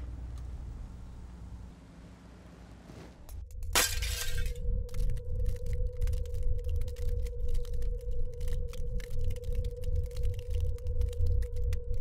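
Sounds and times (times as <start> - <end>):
glass shattering: 3.8 - 4.6
low rumbling drone: 4.3 - 12.0
faint crackles: 4.9 - 12.0.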